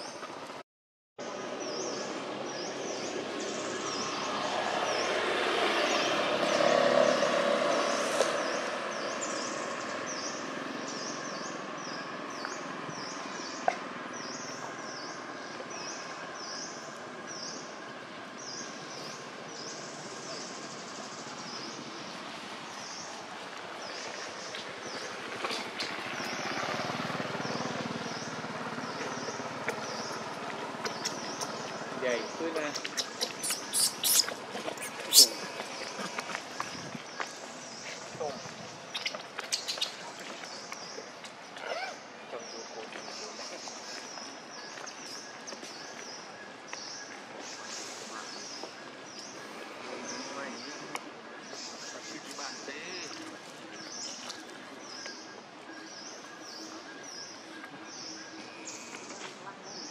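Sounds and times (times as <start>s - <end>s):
outdoor noise wash: 0.0s - 0.6s, 1.2s - 59.9s.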